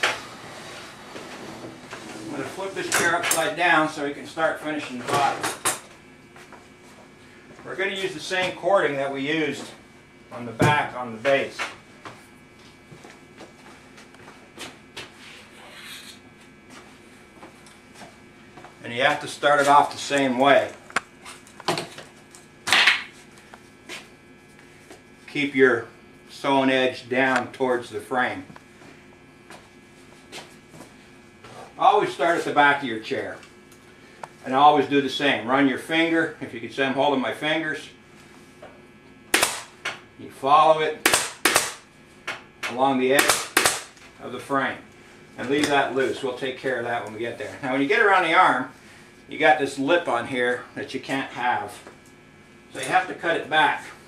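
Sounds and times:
faint footsteps: 11.6 - 18.8, 28.6 - 31.6
staple gun firing: 41.1 - 41.8, 43.2 - 43.9.

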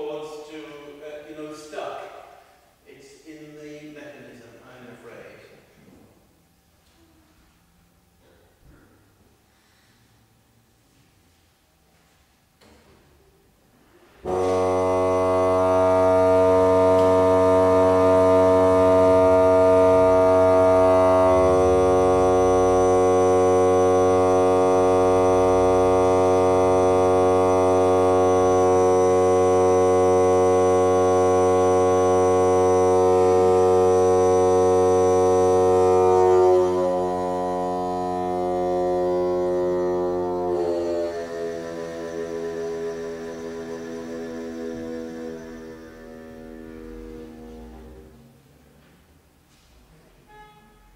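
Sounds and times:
pipe organ chords: 14.2 - 48.5.

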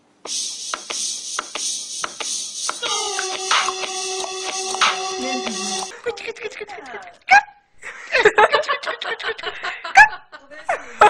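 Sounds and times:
steady hiss: 0.3 - 2.8
music: 0.3 - 6.0.

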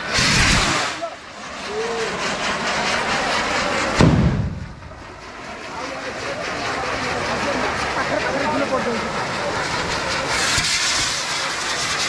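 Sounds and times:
firecracker bang: 0.0 - 1.2, 3.9 - 5.0
fireworks crackling hiss: 0.0 - 5.0, 8.6 - 12.0.

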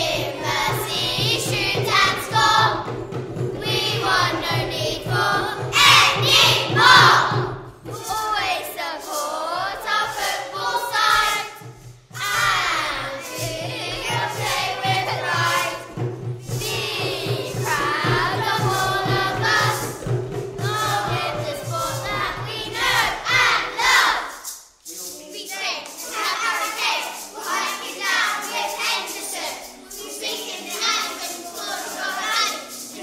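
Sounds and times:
backing track: 0.0 - 25.1
children singing pop song: 0.0 - 33.0.

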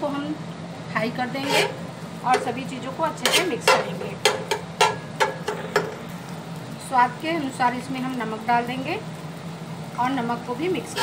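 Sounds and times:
metal spatula scraping an iron griddle: 1.3 - 5.9, 10.8 - 11.0.

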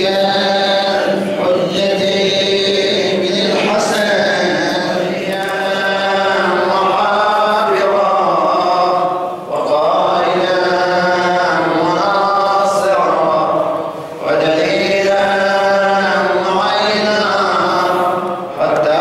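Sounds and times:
men chanting a lament: 0.0 - 19.0.

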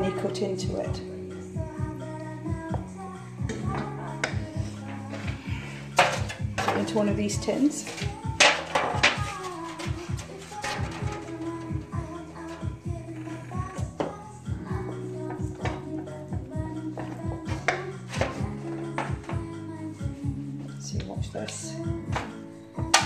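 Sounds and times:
background music with held notes: 0.0 - 23.0
wooden spoon scraping a saucepan: 3.8 - 14.2.

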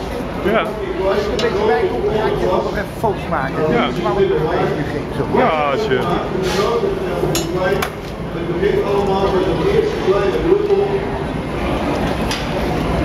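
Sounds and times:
people talking: 0.0 - 11.3.

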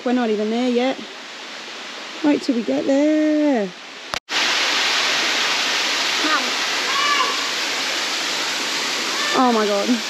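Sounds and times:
waterfall rushing: 4.0 - 10.0.

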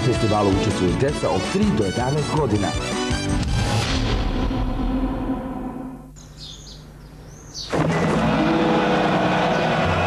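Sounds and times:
advert music with sustained notes: 7.8 - 10.0.

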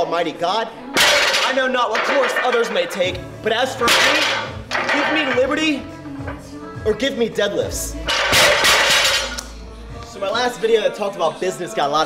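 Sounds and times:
iron plates clattering: 1.0 - 3.1, 3.8 - 5.6, 8.0 - 9.4.

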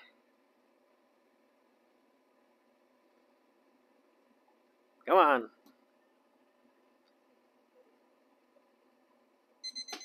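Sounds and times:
thermometer alarm beeping: 9.6 - 10.0.

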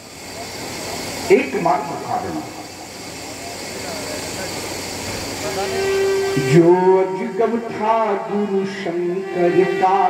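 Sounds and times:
steady noisy hiss: 0.0 - 10.0
faint voices murmuring: 2.0 - 7.1.

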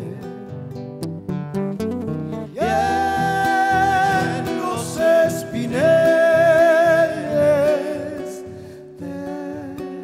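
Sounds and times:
man singing: 0.0 - 0.6, 2.4 - 10.0
plucked acoustic guitar: 0.0 - 10.0.

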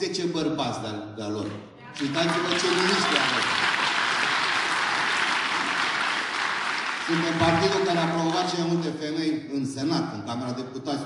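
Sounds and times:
audience applauding: 2.0 - 8.7.

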